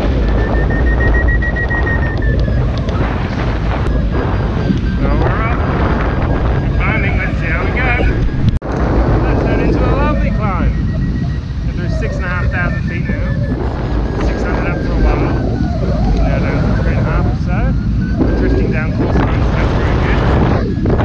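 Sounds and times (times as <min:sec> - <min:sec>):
indistinct voices: 0:00.0 - 0:21.0
wind buffeting microphone: 0:00.0 - 0:21.0.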